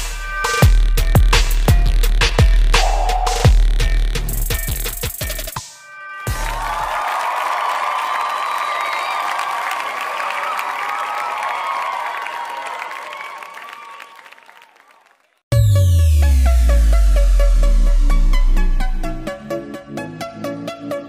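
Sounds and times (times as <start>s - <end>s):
electronic music with heavy bass: 0.0s - 5.6s, 15.5s - 20.0s
crowd cheering and applauding: 6.3s - 15.5s.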